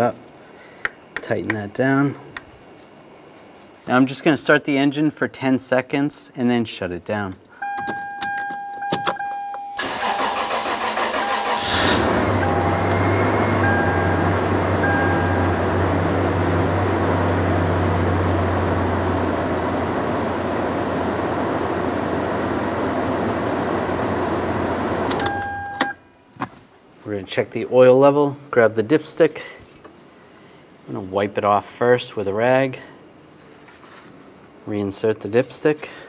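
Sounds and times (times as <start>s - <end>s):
electronic beep: 7.6s - 10.4s, 12.3s - 15.6s, 25.2s - 26.0s
car engine cranking and idling: 9.8s - 25.7s.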